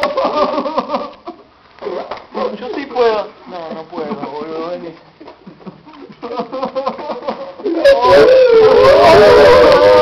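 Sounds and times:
men sobbing and wailing: 0.0 - 1.4, 5.3 - 10.0.

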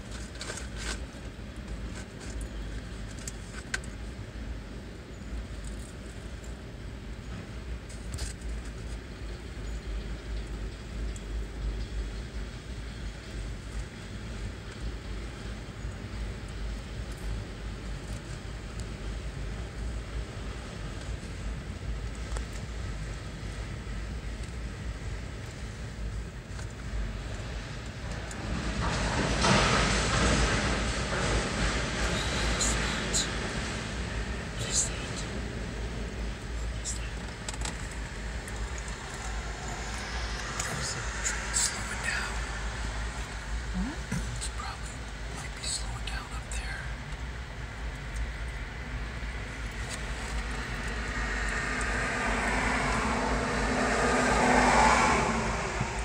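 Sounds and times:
freight train cars rumbling: 0.0 - 46.0, 46.8 - 56.0
freight train rolling past: 27.1 - 43.9, 48.6 - 56.0
road vehicle passing: 27.1 - 45.5, 48.8 - 56.0.

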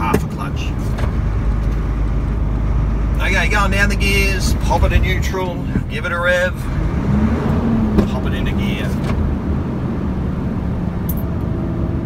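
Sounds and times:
gearbox downshift: 0.0 - 12.0
truck diesel engine running: 0.0 - 12.0.

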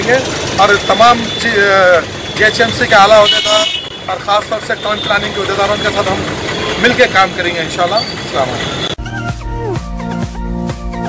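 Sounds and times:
man speaking: 0.0 - 8.7
street traffic: 0.0 - 11.0.

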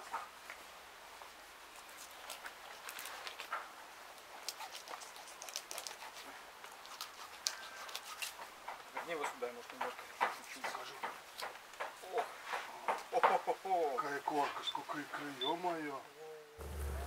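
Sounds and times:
faint sharp clicks and scrapes: 1.7 - 12.7.

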